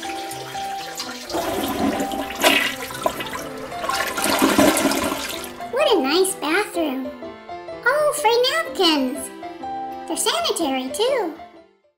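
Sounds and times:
toilet flushing: 0.0 - 5.7.

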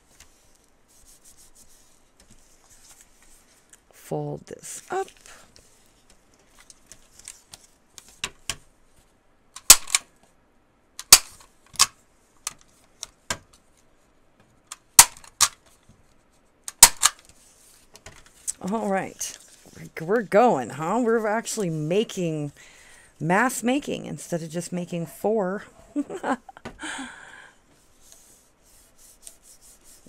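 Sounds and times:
stapler clacking shut: 16.7 - 17.2
paper rustling: 17.2 - 19.9.

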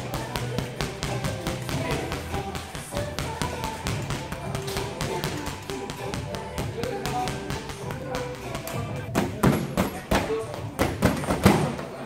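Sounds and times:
gloves tapping a punching ball: 0.0 - 11.2
background music: 0.0 - 12.0.

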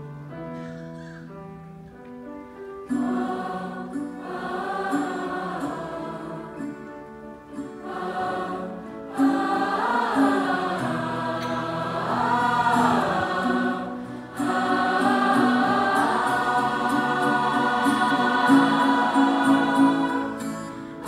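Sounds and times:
large choir singing: 2.8 - 21.0.

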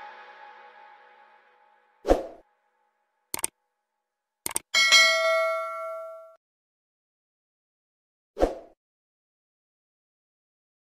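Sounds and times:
bright notification bell ding: 4.8 - 6.4.

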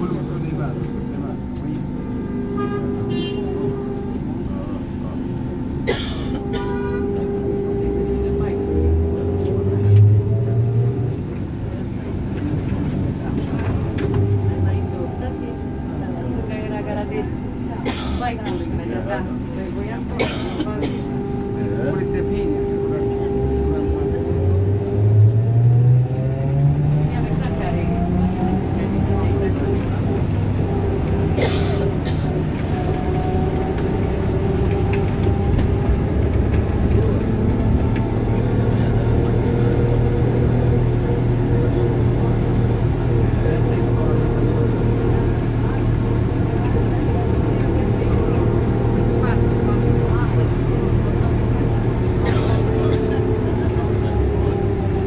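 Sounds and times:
rattle and road noise: 0.0 - 55.0.

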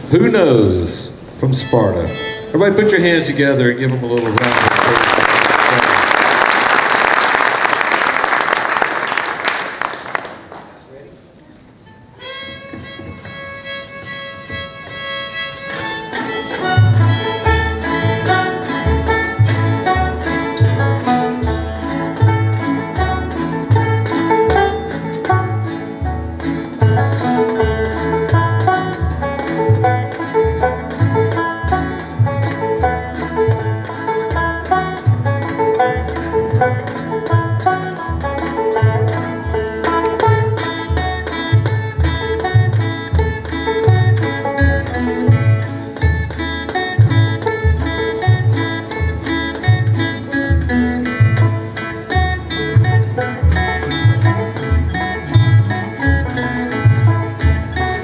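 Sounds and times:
fast picked banjo notes: 0.0 - 10.7, 12.0 - 58.0
bluegrass band playing: 0.0 - 58.0
upright bass steady beat: 16.1 - 58.0.

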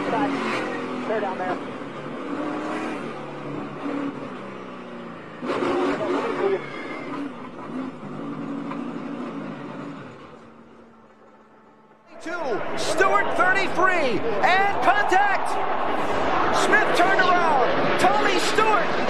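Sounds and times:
steady rush of noise: 12.1 - 19.0.

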